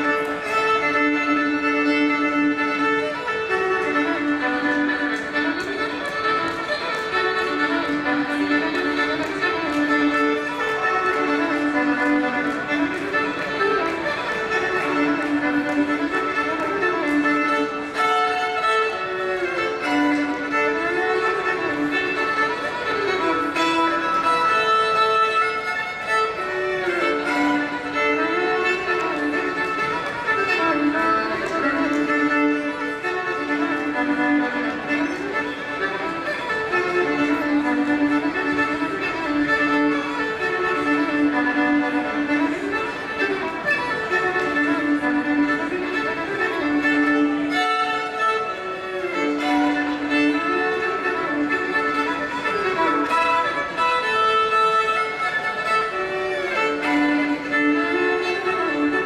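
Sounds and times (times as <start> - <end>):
lively solo fiddle tune: 0.0 - 59.0.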